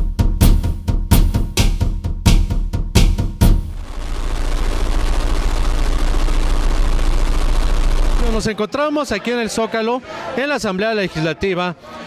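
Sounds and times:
loud static noise: 3.7 - 8.6.

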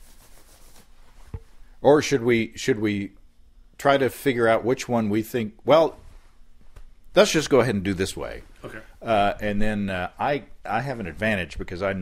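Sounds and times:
faint rustling handling noise: 0.0 - 1.8, 5.6 - 7.1.

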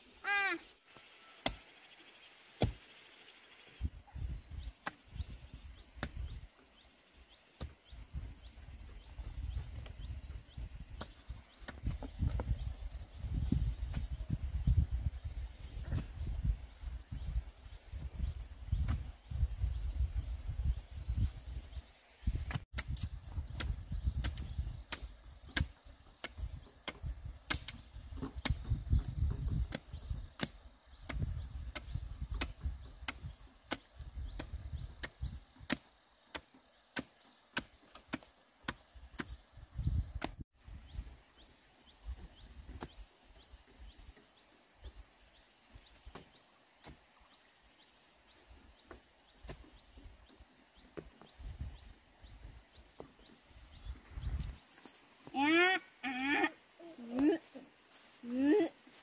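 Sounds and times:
machete chopping bamboo: 2.6 - 2.8, 29.7 - 39.4.

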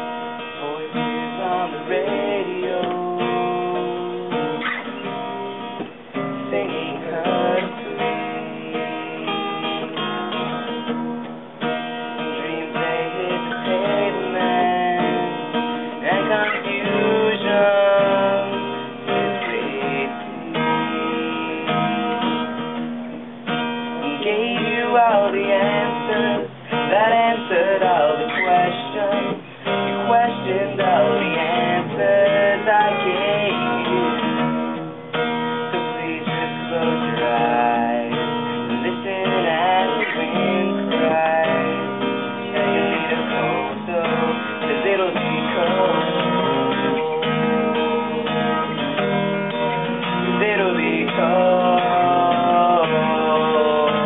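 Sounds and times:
man singing: 0.0 - 10.4, 12.1 - 22.6, 23.9 - 49.1, 49.7 - 54.0
acoustic guitar strumming: 0.0 - 54.0.

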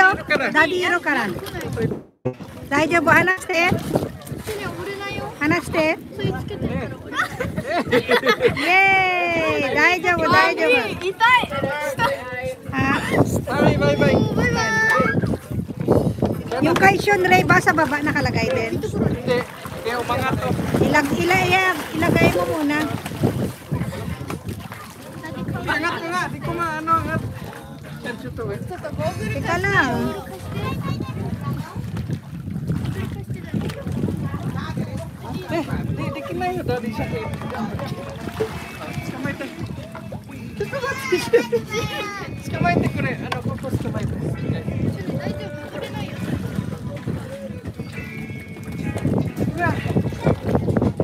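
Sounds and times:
faint voices: 0.0 - 51.0
water splashing from swimmers: 0.0 - 51.0
wind buffeting microphone: 0.0 - 51.0
music: 25.2 - 31.2, 35.4 - 51.0.

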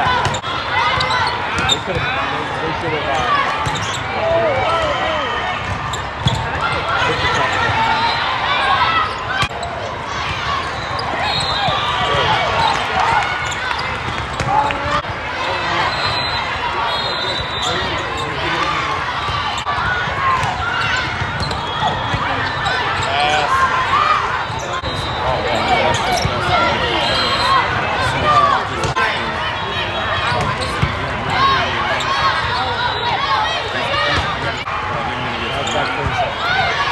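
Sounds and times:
din of many voices: 0.0 - 36.9.

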